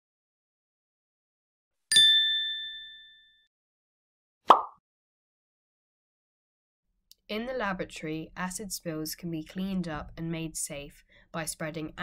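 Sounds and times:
bright bell-like ding: 0:01.9 - 0:03.5.

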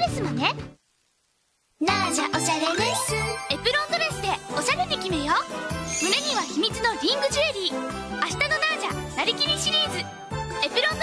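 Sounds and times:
high sing-song voice: 0:01.8 - 0:07.9
upbeat jingle with bass and chimes: 0:02.4 - 0:04.4, 0:05.4 - 0:07.0.

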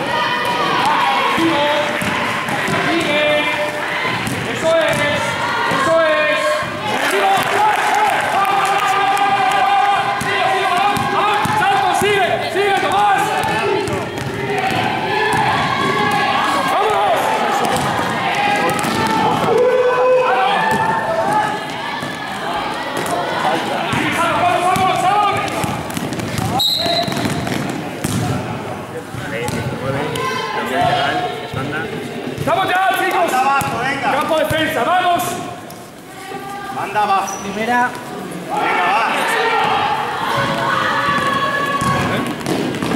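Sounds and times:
players and spectators shouting: 0:00.0 - 0:42.9
basketball dribbling on hall floor: 0:10.0 - 0:12.2, 0:12.8 - 0:16.3, 0:24.7 - 0:28.4, 0:40.4 - 0:42.9.

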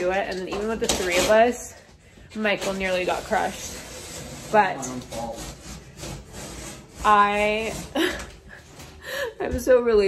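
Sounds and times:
rubbing and rustling on microphone: 0:02.4 - 0:08.6.

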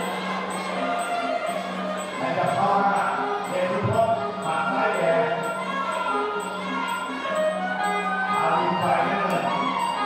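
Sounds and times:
reedy melody: 0:00.0 - 0:10.0.

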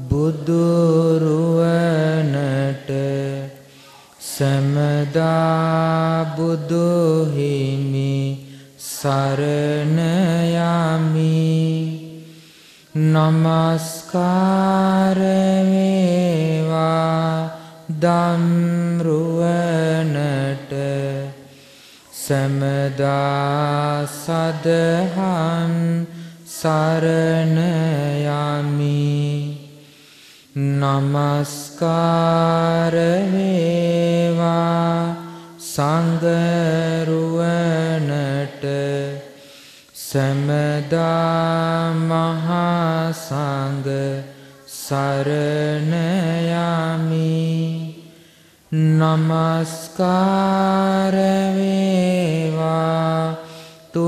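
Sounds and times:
man chanting: 0:00.0 - 0:54.0.

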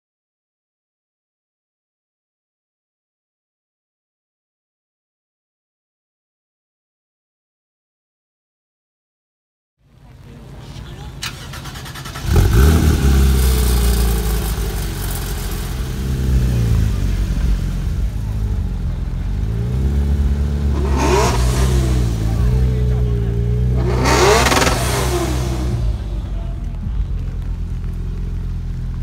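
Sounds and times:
sports car engine idling: 0:09.9 - 0:29.0
engine rev blips: 0:11.2 - 0:29.0.

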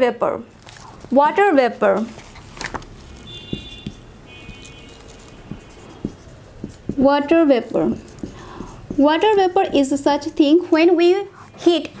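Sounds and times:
marker squeaking on whiteboard: 0:03.2 - 0:10.4
felt tip tapping: 0:05.5 - 0:07.2, 0:07.8 - 0:09.9.

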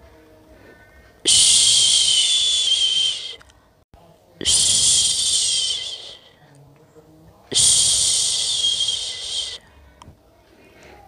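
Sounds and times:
person shushing: 0:01.3 - 0:03.4, 0:04.4 - 0:06.4, 0:07.5 - 0:09.6.

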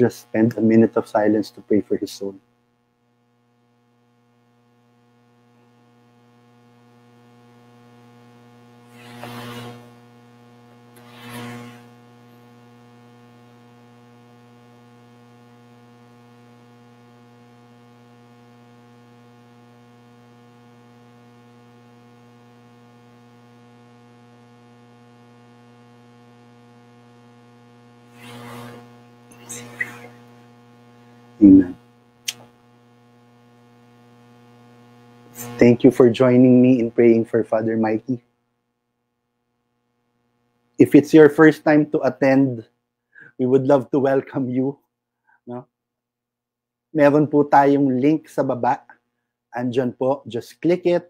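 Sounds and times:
electrical mains hum: 0:00.0 - 0:51.0.

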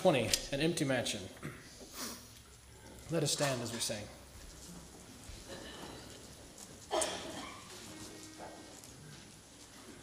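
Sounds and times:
rustling and shuffling: 0:07.6 - 0:10.0.

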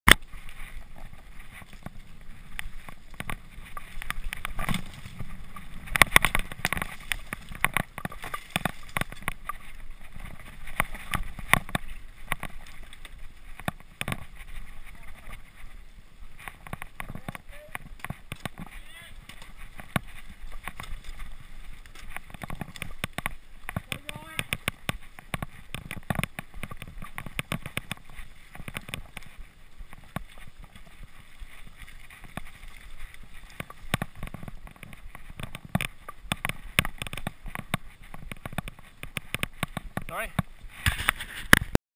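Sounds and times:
mountain bike rattling: 0:00.1 - 0:41.7.

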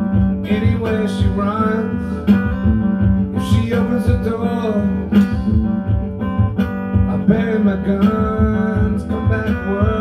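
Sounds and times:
acoustic guitar strumming: 0:00.0 - 0:10.0
person singing: 0:00.4 - 0:02.6, 0:03.3 - 0:05.6, 0:07.1 - 0:10.0.

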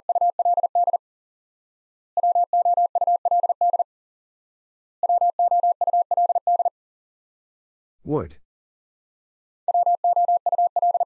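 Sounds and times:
morse code tone: 0:09.7 - 0:11.0.

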